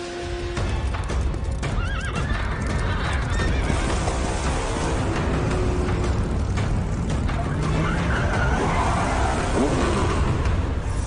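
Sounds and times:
galloping hoofbeats: 0.4 - 8.4.

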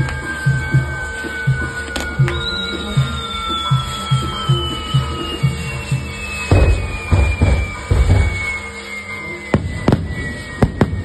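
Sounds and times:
fireworks bangs: 0.0 - 11.0.

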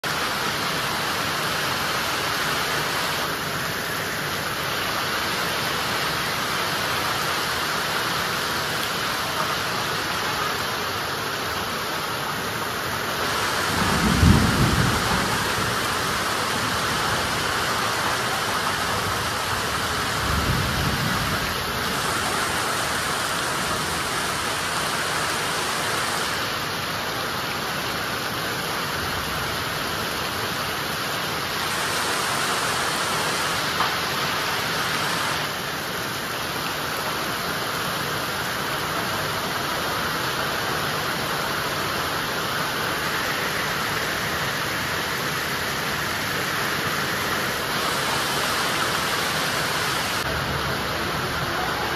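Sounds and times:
heavy rain pouring: 0.0 - 51.9
thunder rumbling: 13.3 - 22.3.

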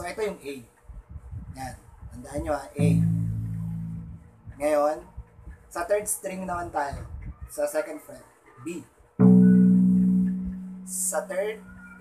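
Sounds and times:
electric bass note ringing: 2.8 - 4.6, 9.2 - 12.0.

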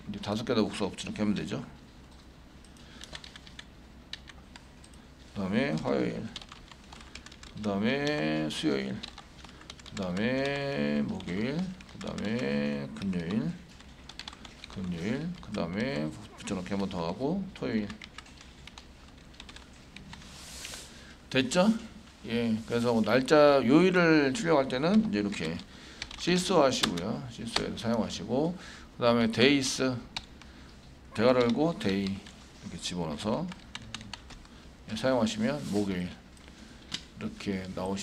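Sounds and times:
computer keyboard clicking: 2.1 - 5.0, 5.7 - 10.6, 14.1 - 16.0, 17.8 - 20.2, 25.3 - 26.2, 30.2 - 30.5, 33.5 - 34.5.

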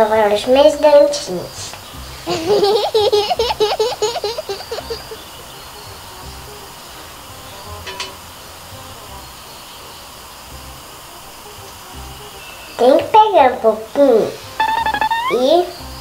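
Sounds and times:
girl giggling: 2.3 - 5.2.

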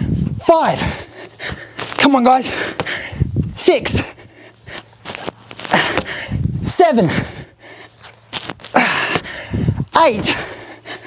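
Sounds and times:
hard breath out: 0.8 - 3.3, 5.6 - 6.4, 7.2 - 11.0
thuds and shuffles on gym floor: 1.4 - 3.0, 5.0 - 6.2, 10.0 - 10.6.

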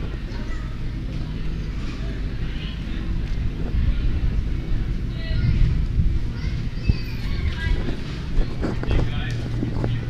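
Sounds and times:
faint indistinct voices: 0.0 - 10.0
wind rumble on microphone: 0.0 - 10.0.

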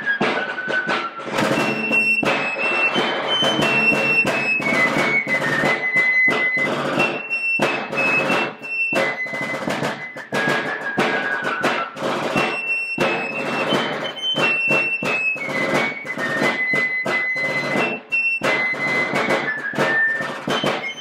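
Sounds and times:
shrill fife melody: 0.0 - 21.0
snare drum rattle: 0.0 - 21.0.

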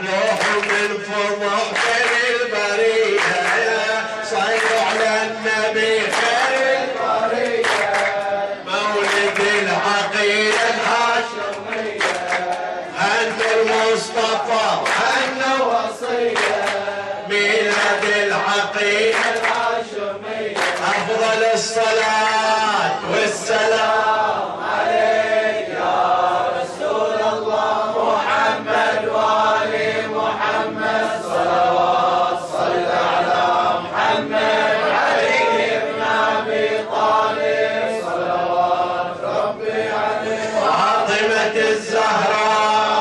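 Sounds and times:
men chanting devotional song: 0.0 - 43.0
hand claps: 0.2 - 21.3.

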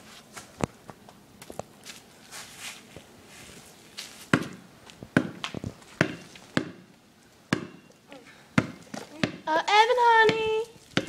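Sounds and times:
basketball bouncing on asphalt: 4.3 - 6.9, 7.5 - 7.9, 8.6 - 11.0.

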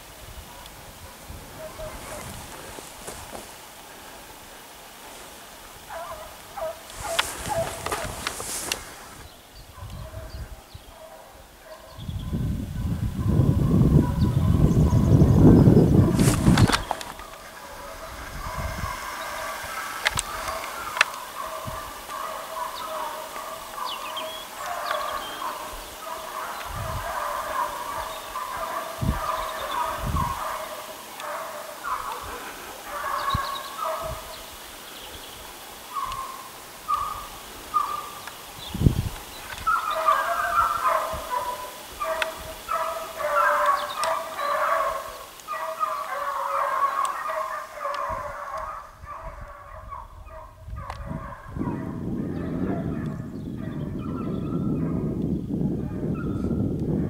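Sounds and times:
hounds baying in the distance: 0.0 - 57.0.

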